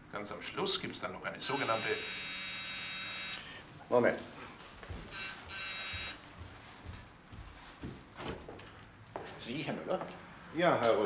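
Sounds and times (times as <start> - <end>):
electric doorbell buzzer: 1.4 - 3.6, 5.1 - 6.2.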